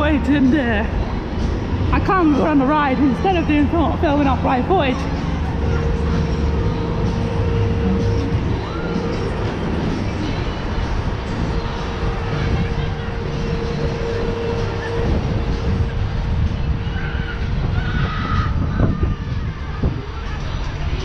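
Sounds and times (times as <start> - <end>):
ride machinery humming: 0.0 - 21.0
wind rumbling over microphone: 0.0 - 21.0.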